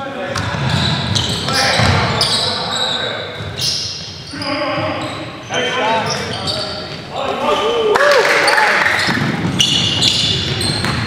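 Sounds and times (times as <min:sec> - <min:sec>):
sneakers squeaking on court: 0:00.3 - 0:07.5, 0:08.5 - 0:11.0.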